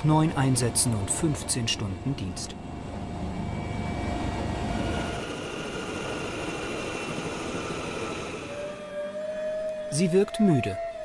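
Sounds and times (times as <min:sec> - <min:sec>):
helicopter turbine whining: 0:00.0 - 0:11.0.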